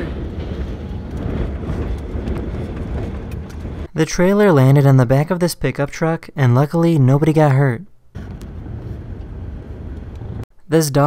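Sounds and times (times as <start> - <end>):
vehicle road and wind noise: 0.0 - 3.9, 8.1 - 10.5.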